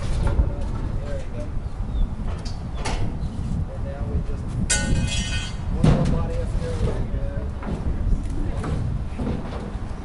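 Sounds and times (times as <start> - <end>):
traffic rumble: 0.0 - 10.0
metal screech: 5.0 - 5.6.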